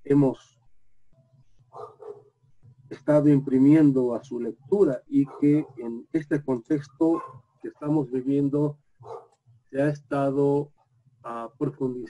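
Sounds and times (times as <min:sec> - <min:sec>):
dog barking faintly: 0:01.7 - 0:02.3, 0:05.1 - 0:08.0, 0:09.0 - 0:09.3.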